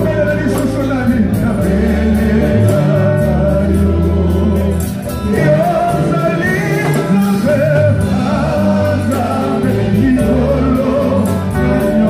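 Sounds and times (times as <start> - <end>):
bass guitar: 0.0 - 12.0
drums: 0.0 - 12.0
group singing gospel: 0.0 - 12.0
guitars: 0.0 - 12.0.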